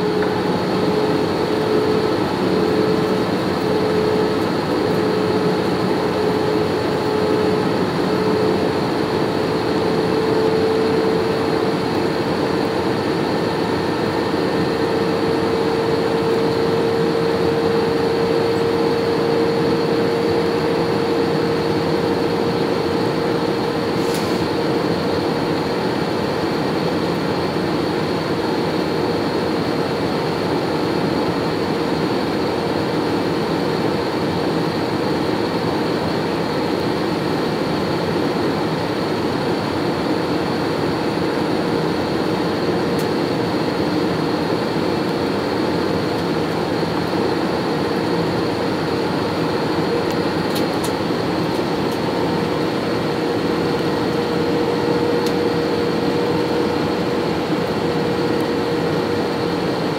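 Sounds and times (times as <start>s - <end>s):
airliner engine drone: 0.0s - 59.9s.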